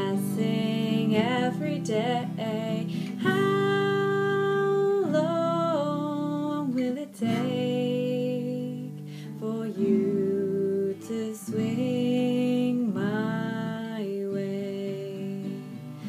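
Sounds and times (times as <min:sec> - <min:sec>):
acoustic guitar: 0:00.0 - 0:16.0
woman singing slow song: 0:00.0 - 0:16.0.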